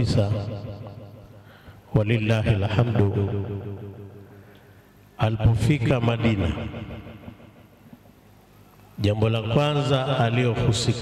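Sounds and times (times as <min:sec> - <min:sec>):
man's voice through microphone: 0:00.0 - 0:01.3, 0:01.9 - 0:04.4, 0:05.2 - 0:07.4, 0:09.0 - 0:11.0.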